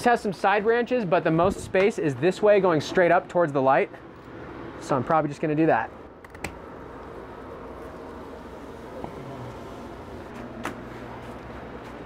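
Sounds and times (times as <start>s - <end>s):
fans whirring: 0.0s - 12.0s.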